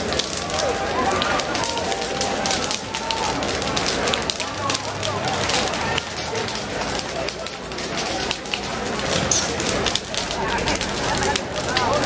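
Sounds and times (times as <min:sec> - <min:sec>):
crowd talking: 0:00.0 - 0:12.0
fire crackling and popping: 0:00.0 - 0:12.0.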